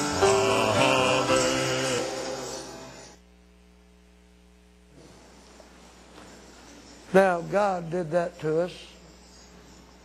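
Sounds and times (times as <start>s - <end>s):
music: 0.0s - 3.2s
faint electrical mains hum: 0.0s - 10.0s.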